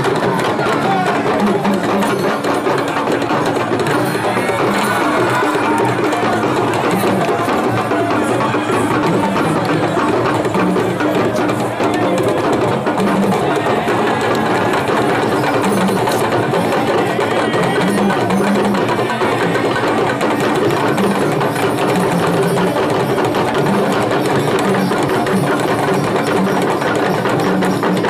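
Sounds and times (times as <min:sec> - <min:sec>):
drum ensemble playing: 0:00.0 - 0:28.0.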